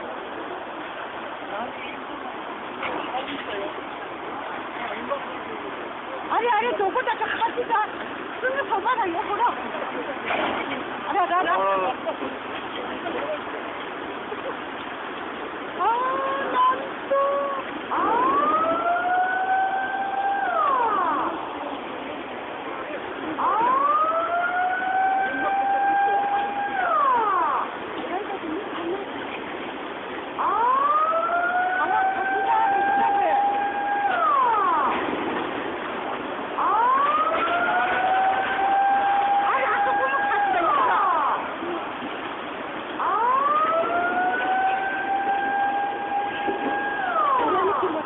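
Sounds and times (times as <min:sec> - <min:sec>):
floodwater rushing through street: 0:00.0 - 0:48.0
high wailing siren tone: 0:15.8 - 0:21.7, 0:23.3 - 0:27.8, 0:30.4 - 0:35.4, 0:36.6 - 0:41.7, 0:43.0 - 0:48.0.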